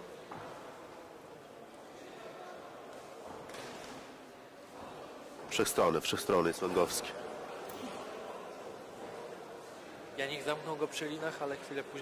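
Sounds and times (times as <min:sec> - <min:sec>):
sports hall ambience: 0:00.0 - 0:12.0.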